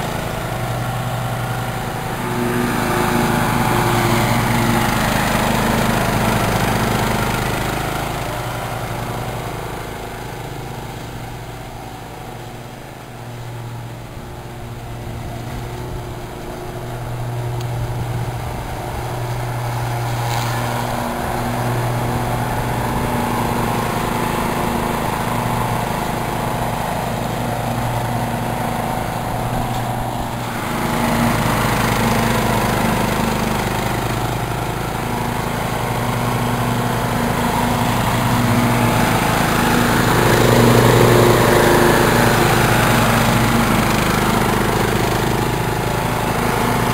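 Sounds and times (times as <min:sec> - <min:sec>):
mower engine running: 0:00.0 - 0:46.9.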